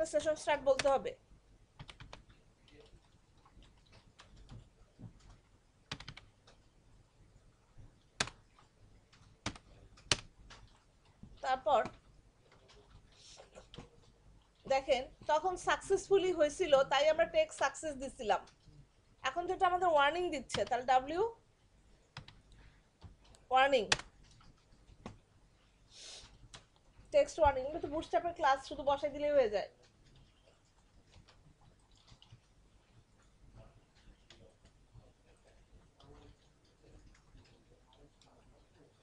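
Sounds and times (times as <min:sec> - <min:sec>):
faint ticks and clicks: 0:01.8 - 0:16.0, 0:16.8 - 0:19.8, 0:21.5 - 0:39.0
keyboard keystrokes: 0:23.9 - 0:25.2.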